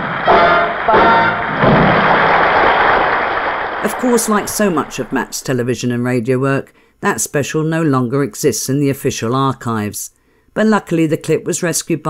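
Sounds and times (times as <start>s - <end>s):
live band playing chords: 0.0s - 3.2s
audience applause: 0.0s - 5.7s.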